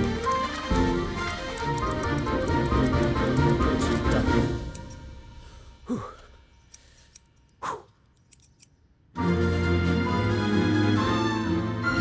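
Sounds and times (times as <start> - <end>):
background music: 0.0 - 8.5, 9.1 - 12.0
scissors snipping: 0.1 - 5.0.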